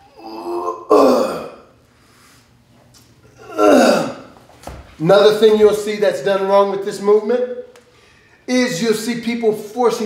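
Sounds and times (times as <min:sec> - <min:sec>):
man groaning with exertion: 0:00.0 - 0:01.7, 0:03.4 - 0:04.3.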